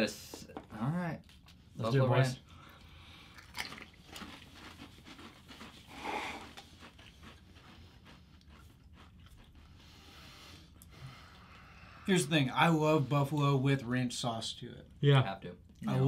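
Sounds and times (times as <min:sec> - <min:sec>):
people crunching crisps: 0:03.3 - 0:09.7.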